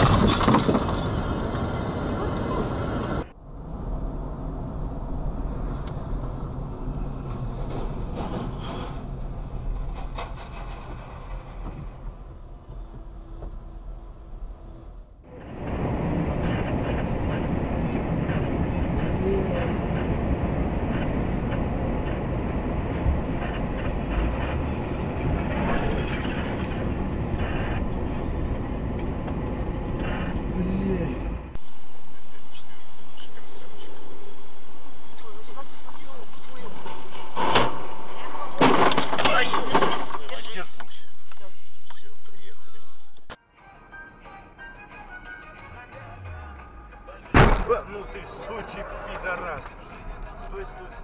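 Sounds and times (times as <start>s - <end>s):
vehicle engine and road rumble: 0.0s - 51.0s.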